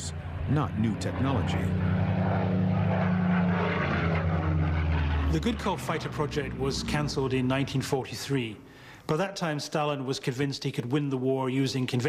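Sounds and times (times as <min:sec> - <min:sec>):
propeller aircraft engine running: 0:00.0 - 0:09.1.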